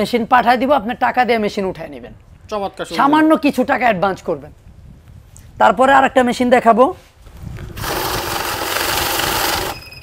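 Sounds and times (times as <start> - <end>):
bill counting machine whirring: 7.8 - 10.0.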